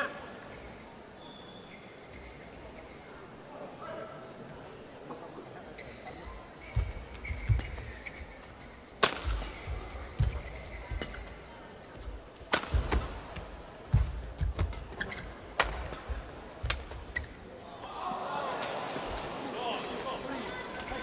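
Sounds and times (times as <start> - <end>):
crowd chatter: 0.0 - 21.0
rackets striking shuttlecock: 9.0 - 11.3, 12.4 - 13.2, 13.9 - 17.3.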